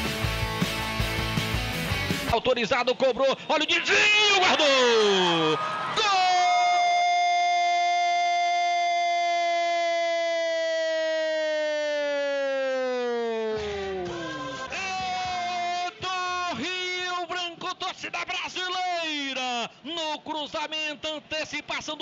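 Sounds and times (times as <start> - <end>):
commentator's drawn-out cry: 3.0 - 11.0
person shouting: 3.9 - 8.8, 14.7 - 17.0.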